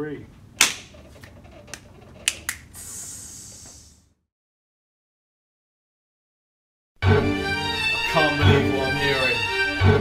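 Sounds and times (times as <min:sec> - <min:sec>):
steady high hiss: 0:02.6 - 0:04.1.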